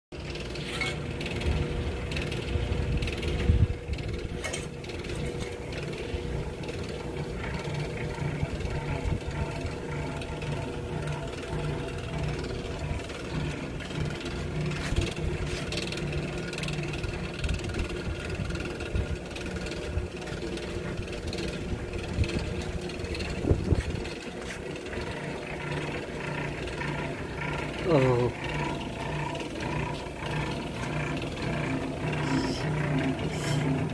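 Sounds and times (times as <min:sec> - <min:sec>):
rotisserie motor ratcheting: 0:00.2 - 0:33.9.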